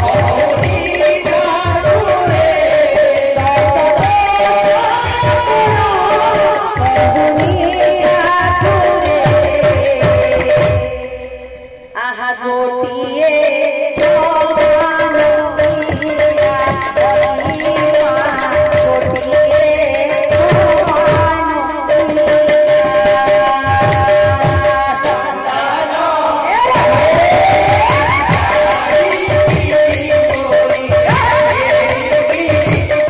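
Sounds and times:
hand drums in quick rhythm: 0:00.0 - 0:11.5, 0:14.0 - 0:25.3, 0:26.6 - 0:33.0
hand cymbals: 0:26.6 - 0:33.0.

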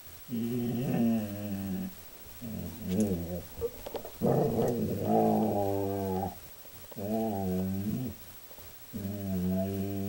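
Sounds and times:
dog growling low: 0:00.3 - 0:06.4, 0:07.0 - 0:08.2, 0:08.9 - 0:10.0.

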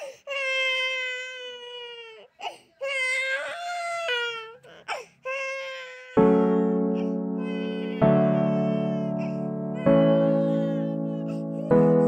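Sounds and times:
infant crying: 0:00.0 - 0:12.0.

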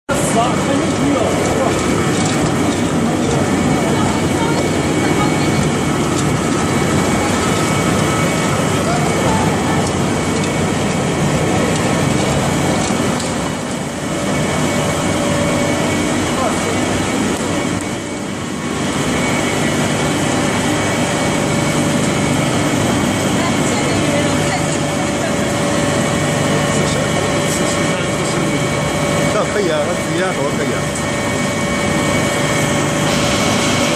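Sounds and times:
motors humming: 0:00.1 - 0:33.9
pellet mill machine noise: 0:00.1 - 0:33.9.

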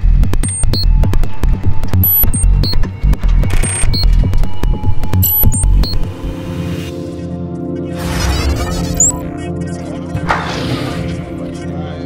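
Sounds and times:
sharp clicks and high blips: 0:00.0 - 0:06.3
electronic music with pulsing bass: 0:00.0 - 0:07.0, 0:08.2 - 0:09.4.

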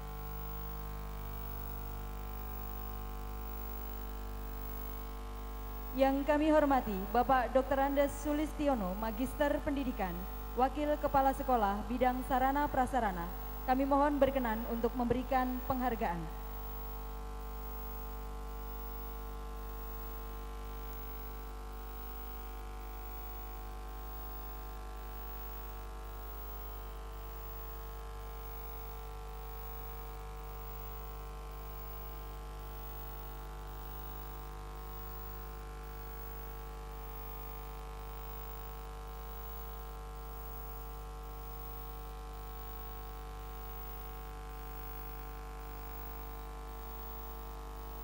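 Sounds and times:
electrical mains hum: 0:00.0 - 0:48.0.

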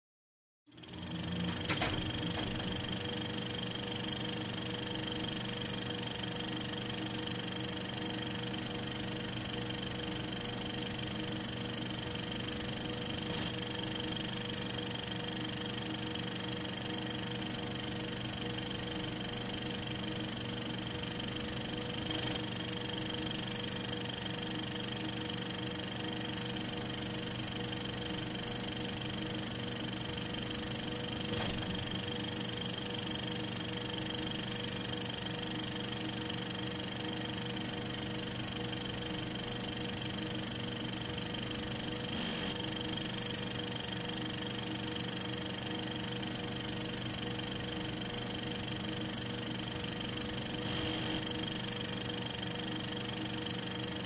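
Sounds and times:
film projector whirring: 0:00.7 - 0:54.0.

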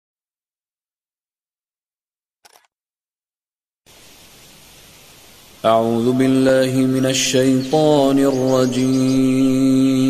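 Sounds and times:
brief click: 0:02.4 - 0:02.7
recording noise hiss: 0:03.9 - 0:10.0.

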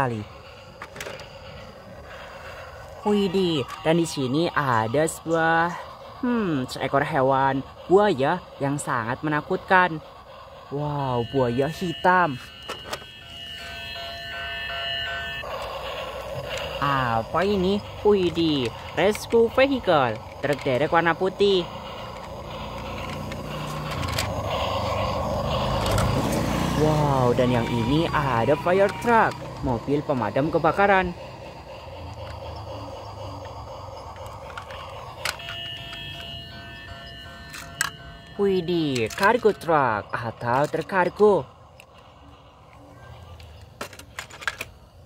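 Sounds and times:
hissing noise: 0:15.4 - 0:36.8.

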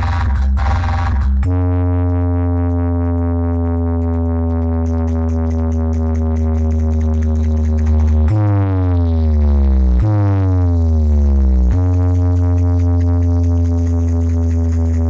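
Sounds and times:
deep electronic bass note: 0:00.0 - 0:15.0.

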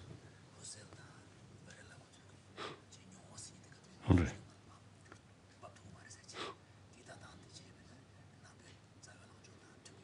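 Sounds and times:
faint whispering voices: 0:00.0 - 0:10.0.

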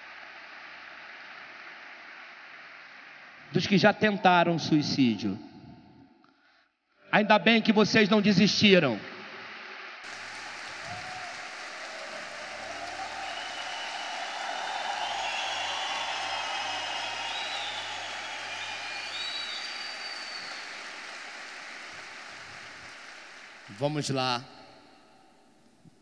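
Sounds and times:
large audience applauding: 0:00.0 - 0:03.8, 0:09.2 - 0:24.6.

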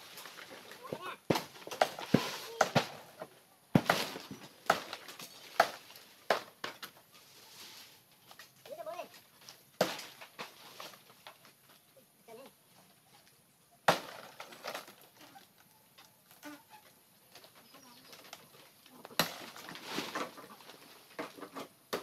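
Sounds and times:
blade chopping palm-leaf stalks: 0:00.1 - 0:03.1, 0:03.7 - 0:06.9, 0:09.8 - 0:11.0, 0:13.9 - 0:15.0, 0:19.1 - 0:20.5, 0:21.2 - 0:22.0.

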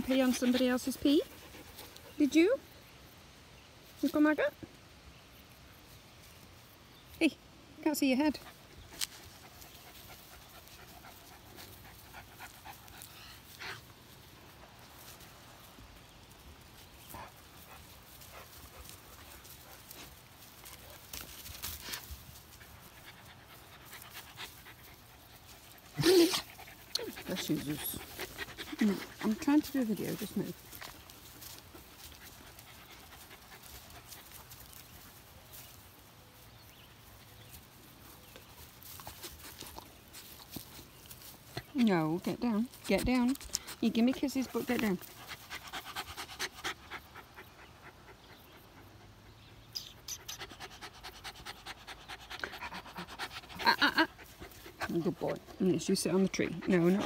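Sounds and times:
dog panting: 0:00.0 - 0:02.6, 0:08.4 - 0:15.2, 0:17.0 - 0:21.0, 0:21.9 - 0:35.1, 0:38.9 - 0:57.0.

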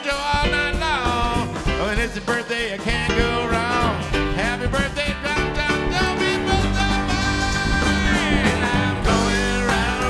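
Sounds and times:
acoustic guitar: 0:00.0 - 0:10.0
live band playing country rock: 0:00.0 - 0:10.0.

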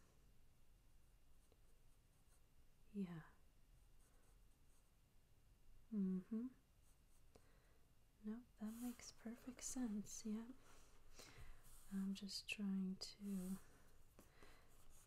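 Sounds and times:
person saying mm-hmm: 0:05.9 - 0:06.6
pencil strokes on paper: 0:08.6 - 0:12.3, 0:13.1 - 0:15.0.

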